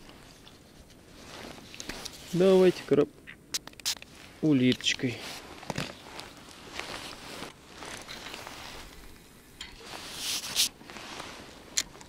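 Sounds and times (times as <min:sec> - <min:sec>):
rustling clothing and gear: 0:00.0 - 0:03.0, 0:04.0 - 0:12.0
small clicks of gear: 0:11.7 - 0:12.0.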